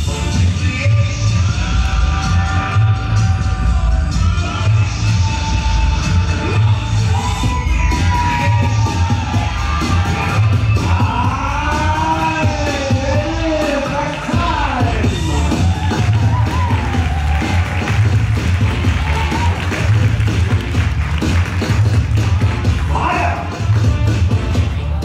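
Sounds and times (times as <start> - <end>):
dance music with heavy bass beat: 0.0 - 25.0.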